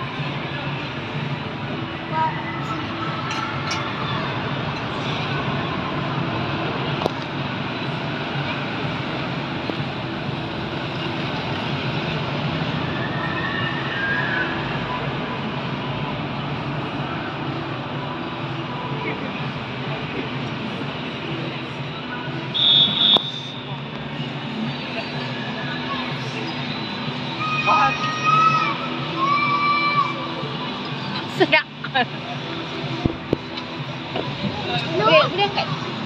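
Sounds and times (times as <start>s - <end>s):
ride machinery rumble: 0.0s - 27.4s.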